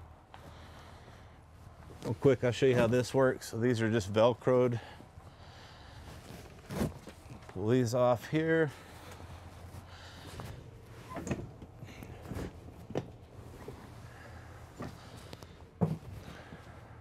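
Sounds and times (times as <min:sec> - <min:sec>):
steady low hum: 0:00.0 - 0:17.0
sofa frame knocks and thumps: 0:15.8 - 0:16.6.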